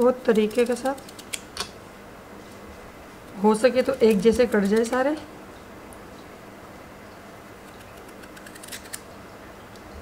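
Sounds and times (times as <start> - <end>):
knife cutting raw potato: 0.3 - 1.7, 3.8 - 5.1.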